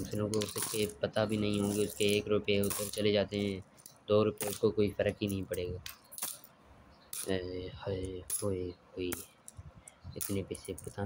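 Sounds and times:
metal coins clinking into plastic bowl: 0.0 - 3.6, 4.4 - 4.8, 6.0 - 6.5.

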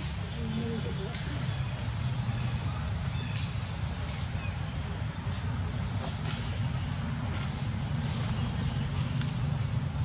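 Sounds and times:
low engine rumble: 0.0 - 10.0
faint ticks: 8.9 - 9.4.

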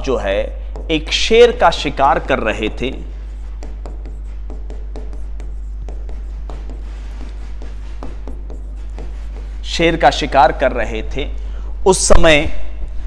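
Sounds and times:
low electrical hum: 0.0 - 13.0
pen tapping and scraping on a board: 0.7 - 1.0, 3.3 - 9.6.

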